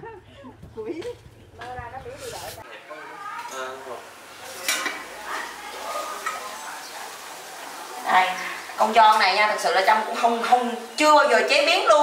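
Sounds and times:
faint voices: 0.0s - 8.8s.

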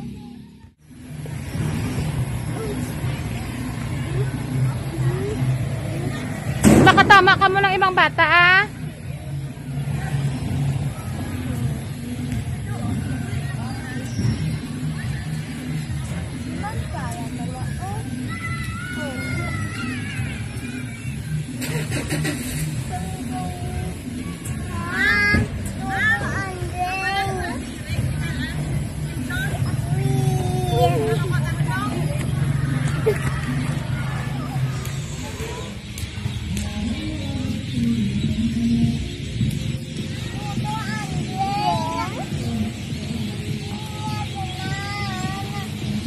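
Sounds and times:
children calling and squealing: 0.0s - 46.0s.

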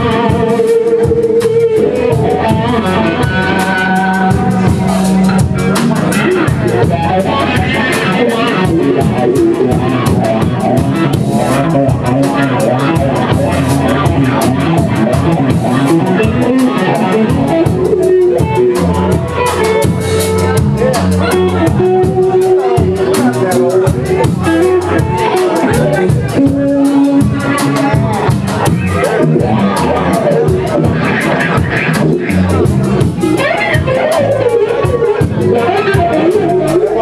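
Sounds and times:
drum kit: 0.0s - 37.0s
electric bass: 0.0s - 37.0s
electric guitar: 0.0s - 37.0s.

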